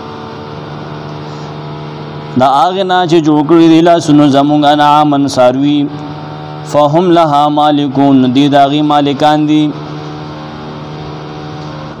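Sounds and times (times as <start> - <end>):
steady machine hum: 0.0 - 12.0.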